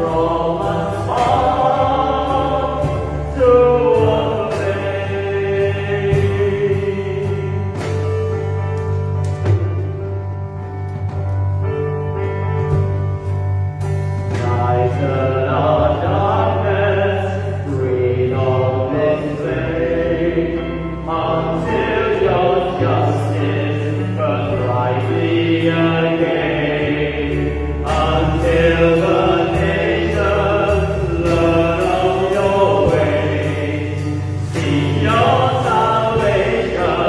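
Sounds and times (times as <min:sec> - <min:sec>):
two voices singing worship song: 0:00.0 - 0:08.9, 0:14.2 - 0:37.0
sustained low bass notes: 0:00.0 - 0:37.0.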